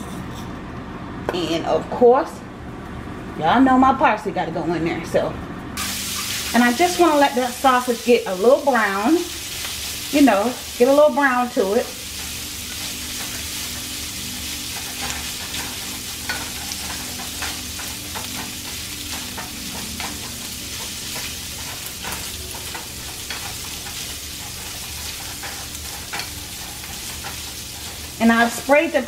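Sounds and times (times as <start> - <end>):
sausage sizzling in a frying pan: 5.8 - 29.0
spatula scraping and tapping: 14.7 - 28.7.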